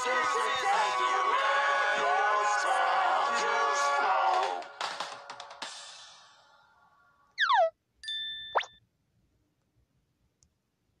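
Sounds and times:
falling whistle slide: 7.4 - 7.7
ding tone: 7.4 - 8.8.

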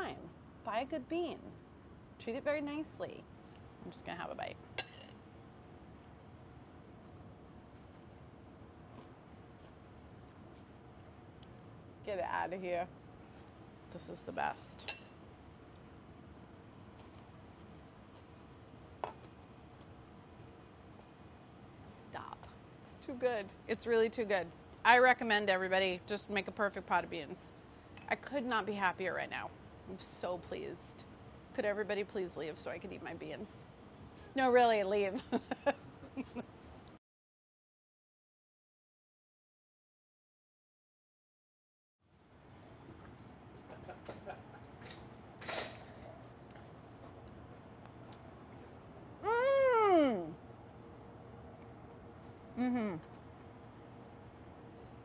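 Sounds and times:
woman's appreciative vocal sound: 49.2 - 50.4, 52.6 - 53.1.

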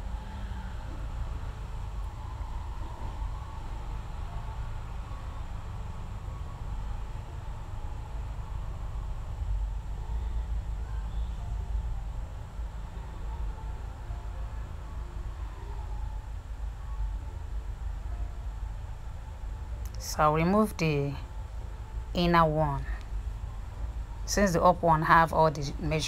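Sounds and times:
faint hiss: 0.0 - 26.0.

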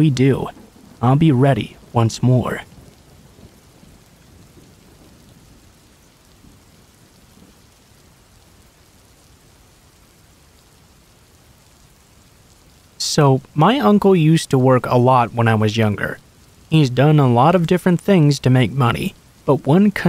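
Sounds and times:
person narrating: 0.0 - 2.7, 13.0 - 20.0
steady rain falling: 0.0 - 20.0.

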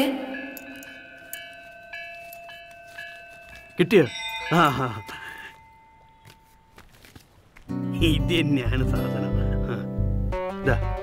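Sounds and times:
bell-like film score tones: 0.0 - 6.8.

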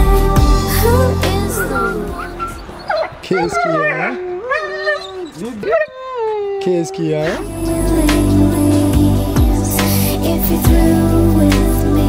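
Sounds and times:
background music: 0.0 - 3.2, 7.4 - 12.0
dog howling and whining: 1.6 - 7.5.

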